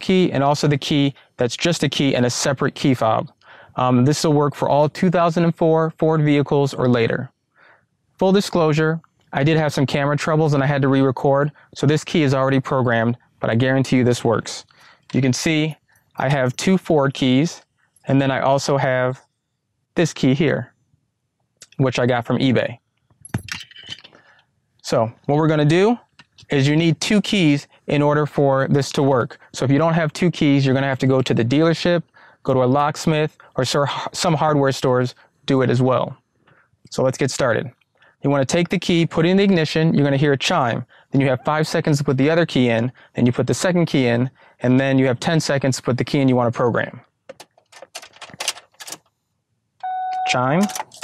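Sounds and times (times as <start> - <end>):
key ring rattling: 23.2 - 24.1, 47.5 - 49.1, 50.6 - 51.0
keys jangling on a metal ring: 23.2 - 24.1, 50.6 - 51.0
key clicking in ignition lock: 47.3 - 49.1, 49.8 - 51.0.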